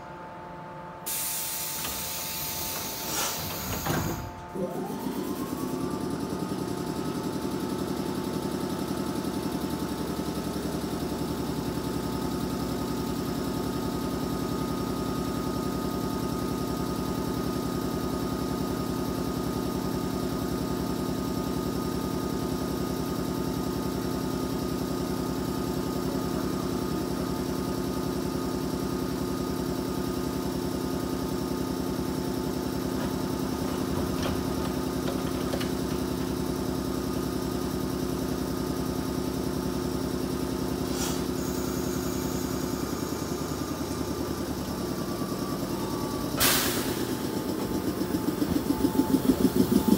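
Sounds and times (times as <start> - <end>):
electric train equipment humming: 0.0 - 20.9, 30.0 - 49.9
door closing click: 1.7 - 4.5.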